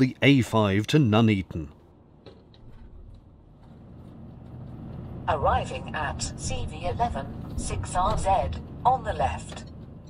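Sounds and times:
vehicle engine and road rumble: 1.6 - 10.0.

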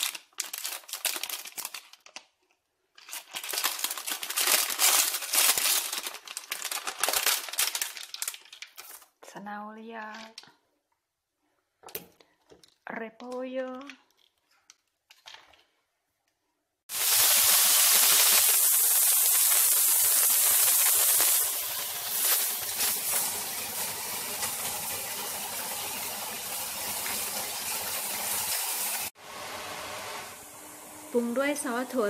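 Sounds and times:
noodles frying in pan: 16.9 - 32.0
vegetables sizzling in hot oil: 16.9 - 32.0.

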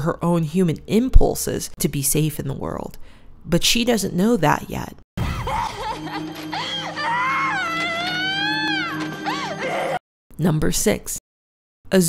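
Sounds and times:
low music drone: 5.2 - 10.0
woman wailing scream: 5.2 - 10.0.

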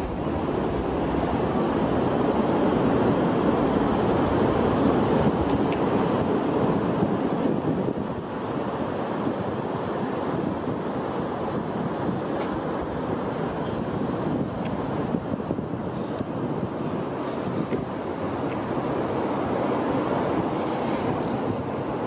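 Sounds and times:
steady rushing noise: 0.0 - 22.0.

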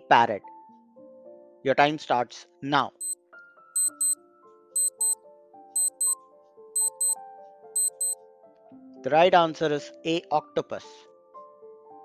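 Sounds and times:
soft background music: 0.0 - 12.0
clock ticking: 3.8 - 4.2, 4.8 - 5.2, 5.8 - 6.2, 6.8 - 7.2, 7.8 - 8.2.

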